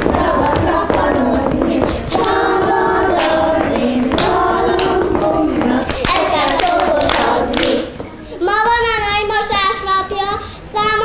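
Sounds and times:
children singing a folk song: 0:00.0 - 0:08.1
single child singing: 0:00.0 - 0:11.0
hands clapping: 0:02.1 - 0:07.9.

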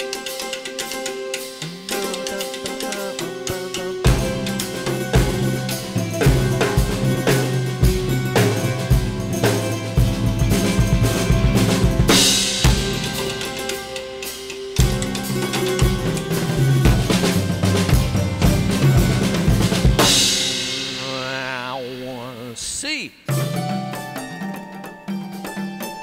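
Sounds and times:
drum kit played fast: 0:00.0 - 0:26.0
sustained pitched notes: 0:01.6 - 0:25.2
cymbal crash ringing: 0:04.0 - 0:22.6.

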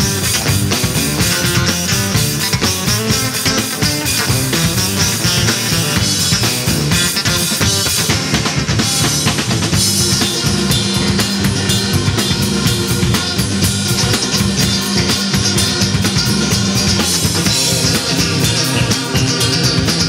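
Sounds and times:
drum kit beat: 0:00.0 - 0:20.0
electric guitars: 0:00.0 - 0:20.0.

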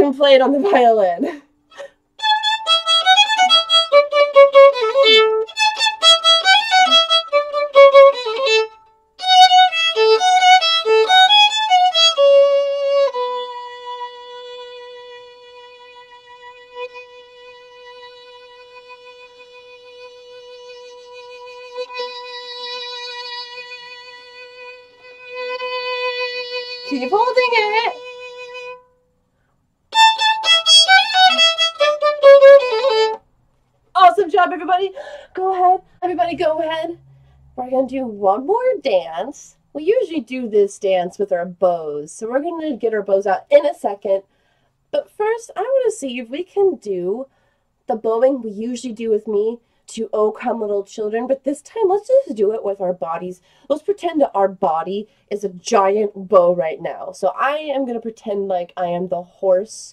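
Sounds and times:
solo violin: 0:02.2 - 0:29.0, 0:29.9 - 0:33.2.

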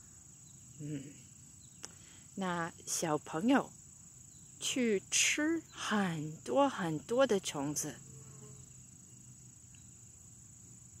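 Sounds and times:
insect high-pitched trill: 0:00.0 - 0:11.0.

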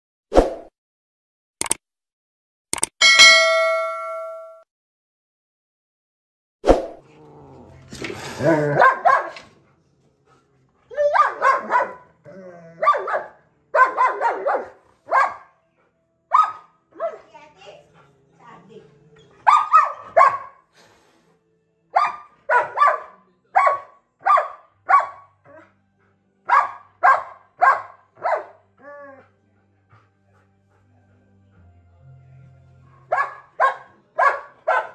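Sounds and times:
puppy barking: 0:08.7 - 0:09.5, 0:11.0 - 0:12.1, 0:12.8 - 0:15.5, 0:16.3 - 0:17.3, 0:19.4 - 0:20.6, 0:22.0 - 0:25.7, 0:26.5 - 0:28.6, 0:32.9 - 0:34.9.

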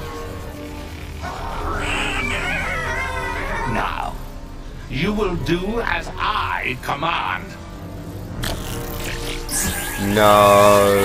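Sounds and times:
cartoon music: 0:01.2 - 0:04.3.

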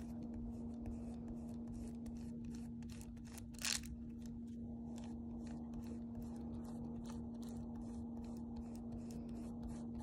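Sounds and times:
eraser rubbing on paper: 0:00.0 - 0:03.7, 0:04.9 - 0:10.0
steady low hum: 0:00.0 - 0:10.0.

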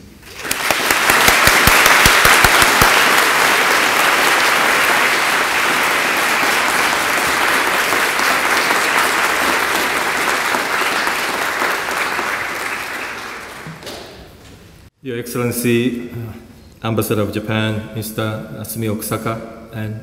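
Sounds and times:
audience applauding: 0:00.2 - 0:14.4.

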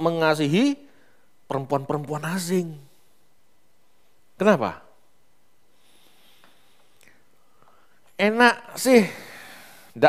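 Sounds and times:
faint breath hiss: 0:00.0 - 0:10.0
soft mouth clicks: 0:06.4 - 0:07.2.

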